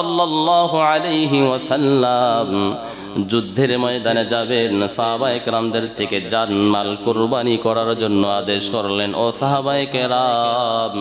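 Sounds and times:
man preaching in sing-song voice: 0:00.0 - 0:11.0.

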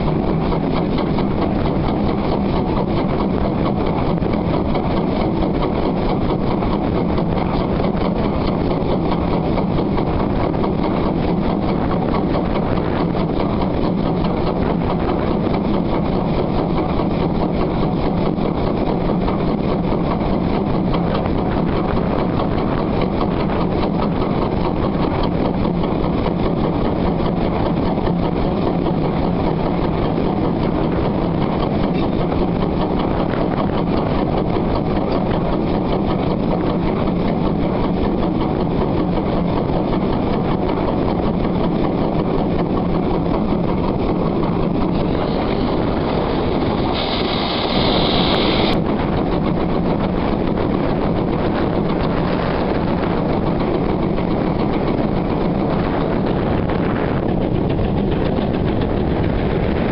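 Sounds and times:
train running: 0:00.0 - 0:59.9
wind on microphone: 0:00.0 - 0:59.9.

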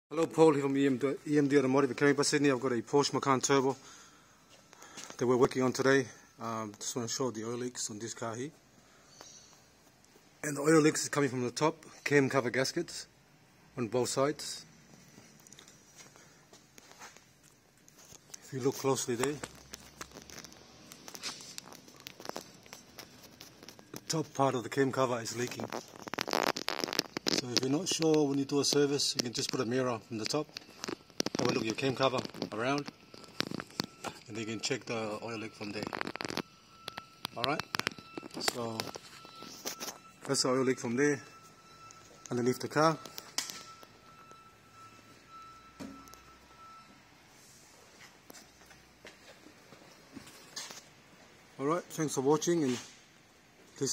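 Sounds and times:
faint steady high tone: 0:10.4 - 0:25.8, 0:27.2 - 0:50.8.

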